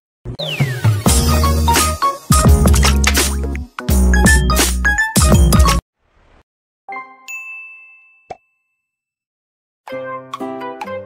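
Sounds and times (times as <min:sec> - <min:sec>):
music: 0:00.3 - 0:05.8, 0:09.9 - 0:11.0
bright bell-like chimes: 0:07.0 - 0:09.0.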